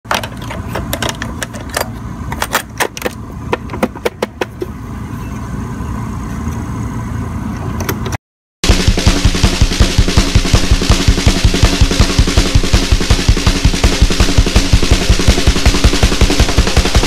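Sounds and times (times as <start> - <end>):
steady low hum: 0.1 - 7.9, 8.6 - 17.0.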